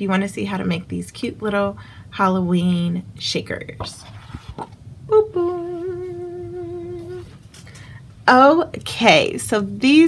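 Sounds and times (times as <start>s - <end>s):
woman humming: 5.1s - 7.3s.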